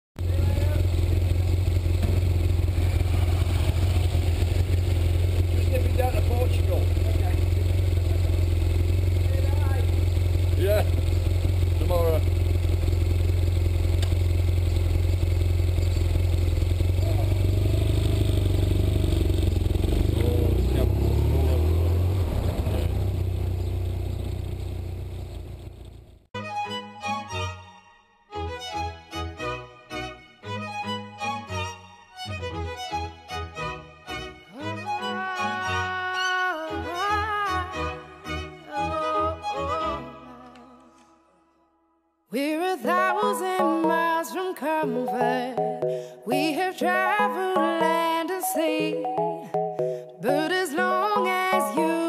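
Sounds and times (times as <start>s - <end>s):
motorcycle engine: 0.2s - 26.3s.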